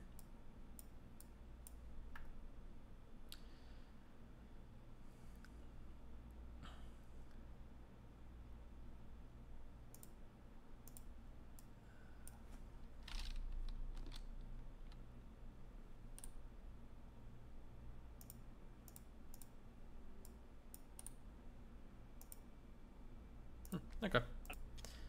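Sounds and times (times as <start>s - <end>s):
faint computer mouse clicks: 9.9s - 10.2s, 10.8s - 12.4s, 16.2s - 16.4s, 18.2s - 19.6s, 20.2s - 21.2s, 22.2s - 22.5s.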